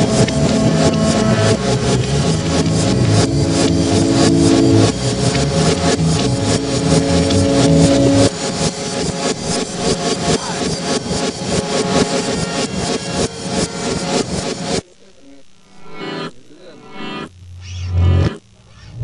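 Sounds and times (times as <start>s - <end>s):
distorted jam music fast beat: 0.0s - 8.5s
held low notes: 0.0s - 10.2s.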